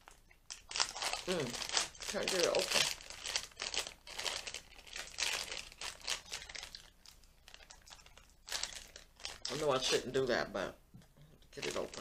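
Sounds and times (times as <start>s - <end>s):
plastic packet crinkling: 0.0s - 10.2s, 11.5s - 12.0s.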